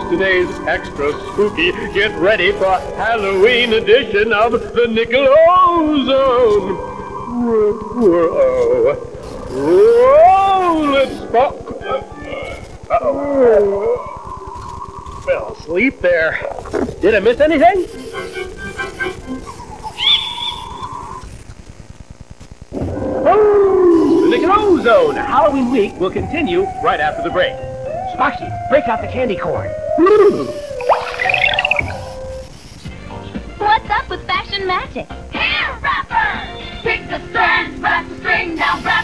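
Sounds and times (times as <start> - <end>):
low rapid buzz: 0.0 - 27.5, 28.2 - 33.0, 37.4 - 39.0
ghostly moaning voice: 6.3 - 12.1, 12.9 - 14.7, 29.6 - 31.0.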